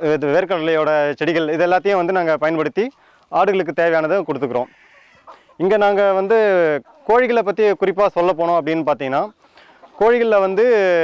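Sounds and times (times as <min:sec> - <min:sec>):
man speaking: 0:00.0 - 0:04.7, 0:05.6 - 0:11.0.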